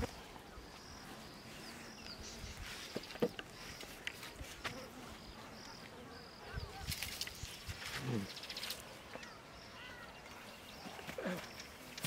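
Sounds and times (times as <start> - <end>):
rustling and scraping: 2.4 - 4.9.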